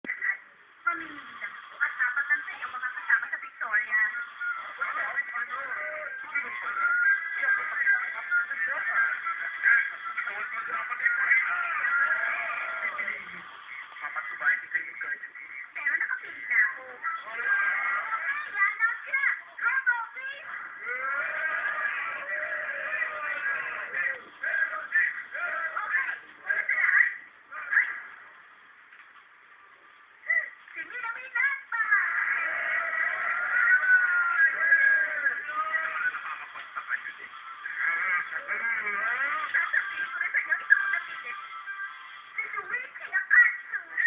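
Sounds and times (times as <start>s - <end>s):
tinny distorted television dialogue: 0.0s - 44.0s.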